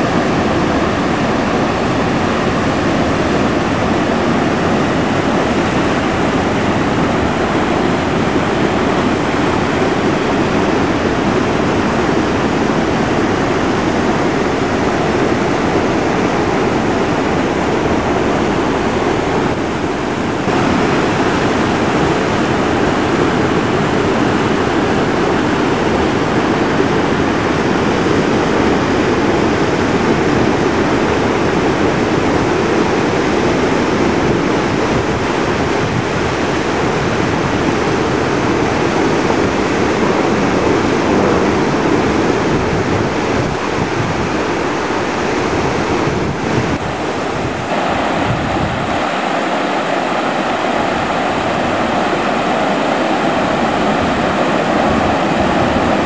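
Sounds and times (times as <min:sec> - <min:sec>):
river water rushing over gravel: 0:00.0 - 0:56.0.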